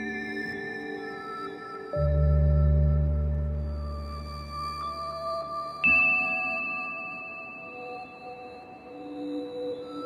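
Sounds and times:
slow ambient music: 0.0s - 10.0s.

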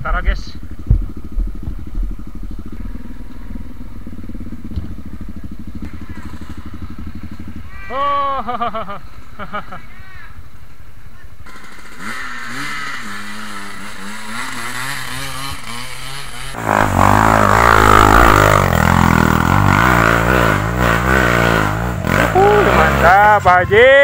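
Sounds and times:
dirt bike engine idling: 0.0s - 24.0s
dirt bike engine revving hard: 0.7s - 8.9s, 11.4s - 23.8s.

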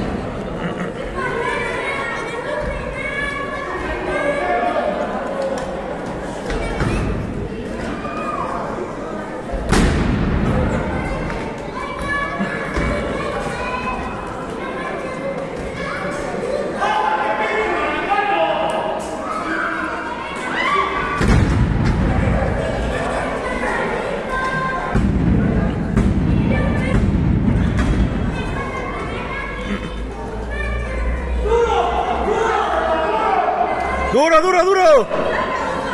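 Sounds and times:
crowd voices and shouts: 0.0s - 35.9s.

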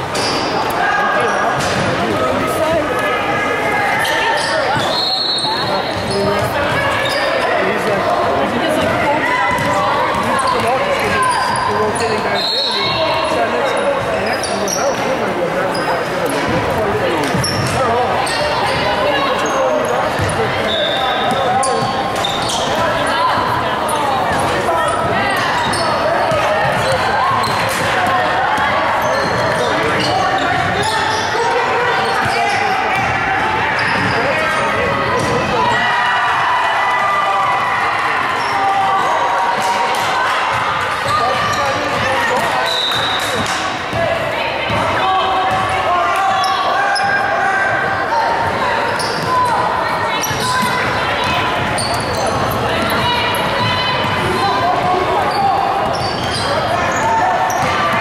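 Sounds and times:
hubbub of voices: 0.0s - 58.0s
sneakers squeaking on gym floor: 4.0s - 8.0s, 8.8s - 35.8s, 40.5s - 44.1s, 48.4s - 58.0s
basketball bouncing on court: 5.6s - 7.2s, 8.8s - 12.1s, 24.3s - 30.9s, 32.0s - 35.6s, 40.5s - 47.2s, 50.2s - 55.2s.

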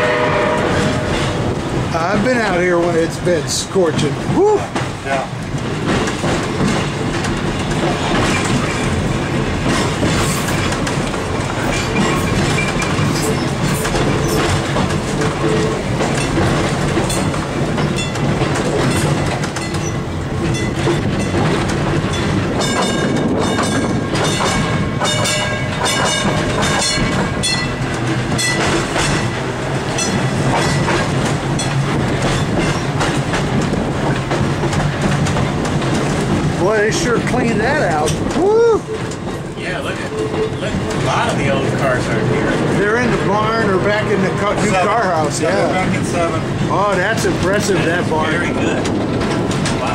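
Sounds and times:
streetcar rumble and rattle: 0.0s - 49.9s
streetcar wheels clacking over rails: 0.0s - 49.9s.

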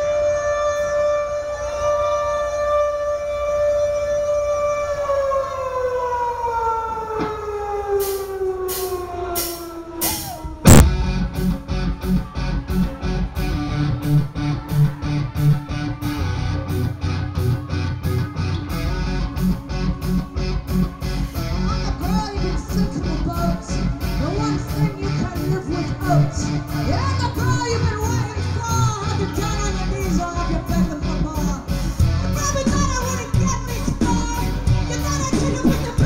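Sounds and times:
droning tone sliding downward: 0.9s - 22.3s
metal band playing: 9.4s - 25.7s
steady drum beat: 10.0s - 14.1s
heavy guitars: 10.0s - 36.0s.

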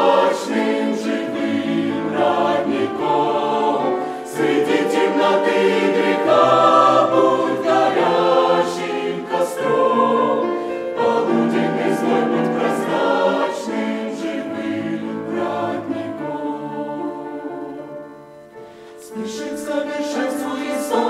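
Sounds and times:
mixed choir singing a hymn: 0.0s - 18.4s, 19.0s - 21.0s.

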